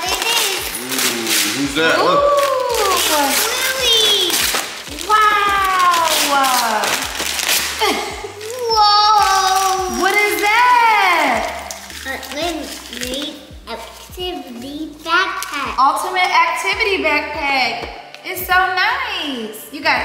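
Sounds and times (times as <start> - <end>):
wrapping paper tearing: 0.0 - 15.7.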